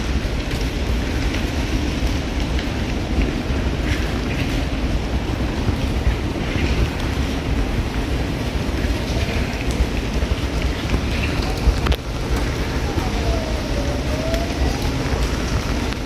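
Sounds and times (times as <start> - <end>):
rain hiss: 0.0 - 16.0
wind rumbling on microphone: 0.0 - 16.0.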